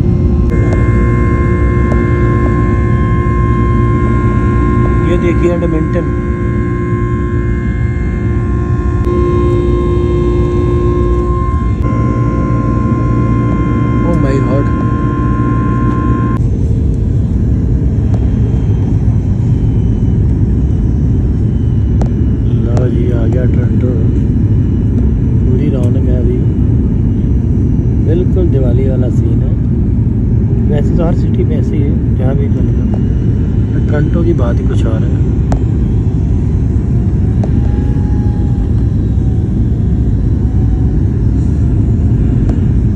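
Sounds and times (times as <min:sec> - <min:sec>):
airliner engine rumble: 0:00.0 - 0:42.9
multi-tone engine whine: 0:00.0 - 0:42.9.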